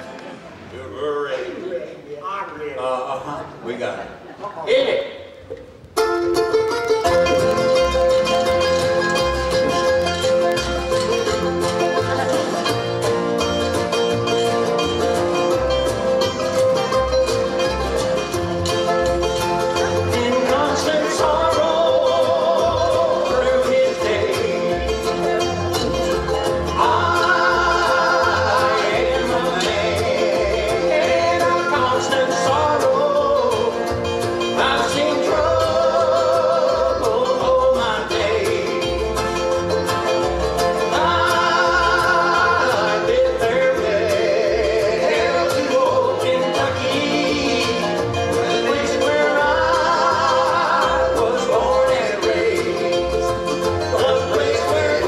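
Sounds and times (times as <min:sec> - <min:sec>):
acoustic guitar strumming: 0:05.4 - 0:55.0
stick bass thumping: 0:05.5 - 0:14.4
washboard rhythm: 0:05.8 - 0:55.0
voices singing long notes: 0:26.6 - 0:34.0, 0:34.6 - 0:39.2, 0:40.8 - 0:55.0.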